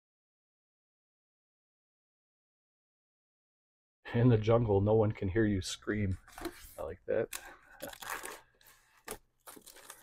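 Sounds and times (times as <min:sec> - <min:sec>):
plastic cases rustling and scraping: 0:06.2 - 0:10.0.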